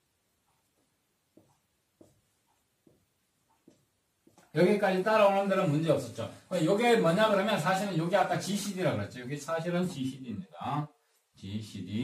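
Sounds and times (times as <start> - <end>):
marker writing on whiteboard: 0.4 - 4.6.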